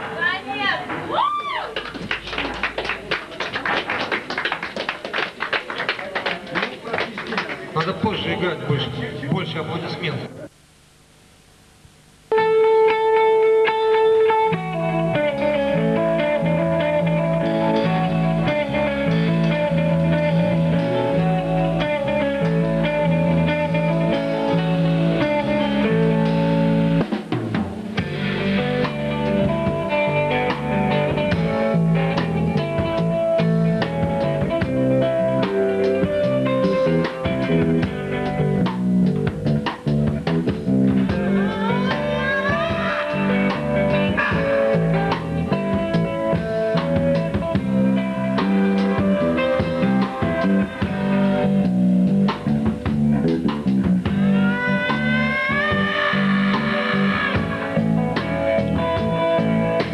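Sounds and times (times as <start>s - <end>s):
rock band playing: 12.3s - 59.9s.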